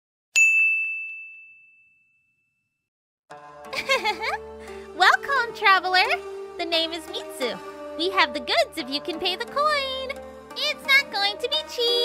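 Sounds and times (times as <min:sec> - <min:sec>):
bell-like chime ding: 0:00.4 - 0:02.8.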